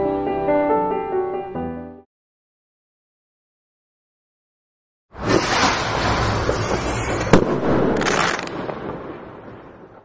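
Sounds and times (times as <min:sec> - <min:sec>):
firework crackling rush: 0:05.1 - 0:10.0
sharp crack: 0:05.2 - 0:10.0.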